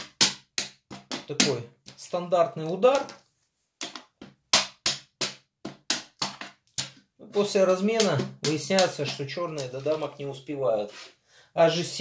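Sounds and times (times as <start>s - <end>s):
draughts pieces clacking on board: 3.8s - 10.2s.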